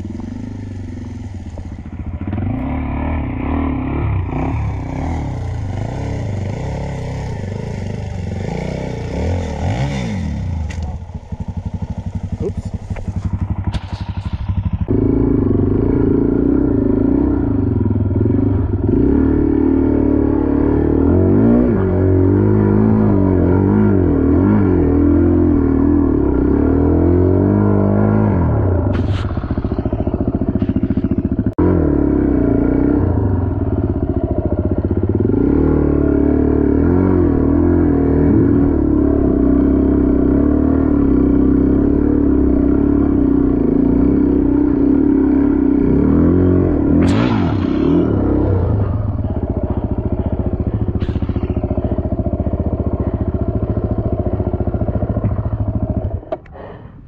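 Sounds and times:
dirt bike engine revving: 0.0 - 56.9.

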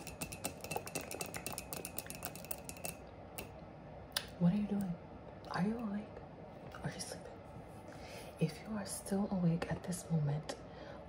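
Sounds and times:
nails tapping on ceramic mug: 0.0 - 3.5.

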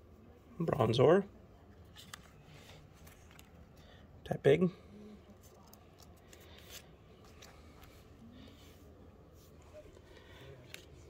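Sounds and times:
trading cards rustling and clicking: 1.8 - 4.0, 5.3 - 8.6.

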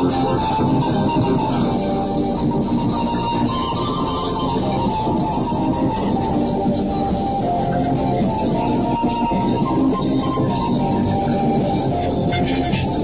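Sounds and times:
panpipe melody with band: 0.0 - 13.0.

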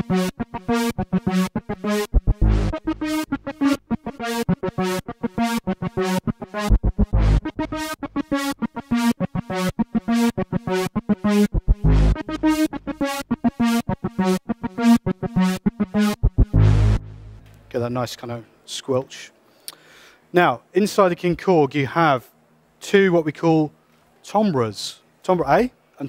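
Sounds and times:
squelchy synthesizer riff: 0.0 - 17.6
deep synth bass notes: 0.0 - 17.7.

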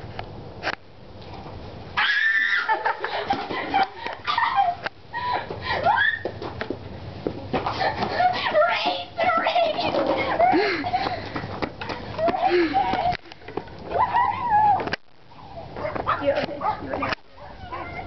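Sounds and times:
girls shouting and screaming: 2.0 - 6.4, 7.8 - 11.0, 11.8 - 15.0, 17.4 - 18.0
girls giggling: 2.4 - 6.1, 7.4 - 14.9.

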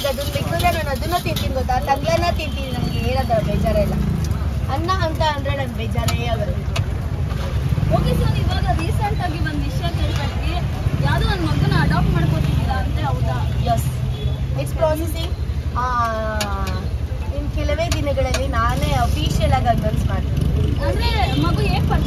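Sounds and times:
people talking: 0.0 - 4.1, 4.7 - 6.6, 7.8 - 14.0, 14.6 - 22.0.

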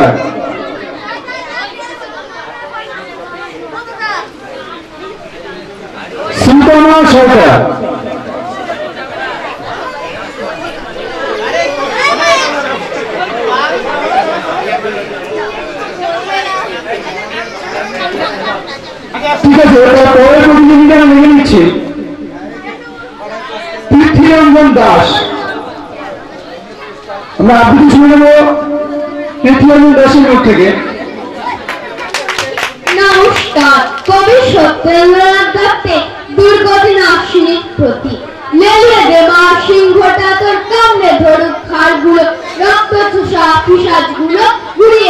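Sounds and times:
people chattering: 0.0 - 45.0
several voices talking: 0.0 - 45.0
man announcing over microphone: 6.2 - 8.2, 19.2 - 22.1, 23.9 - 25.5, 27.4 - 31.0.

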